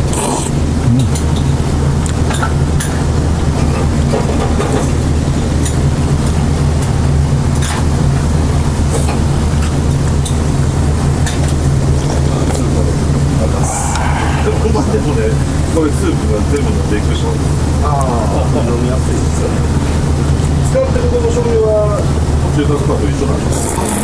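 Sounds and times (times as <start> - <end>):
kitchen ventilation fans humming: 0.0 - 24.0
noodles being slurped: 23.6 - 24.0.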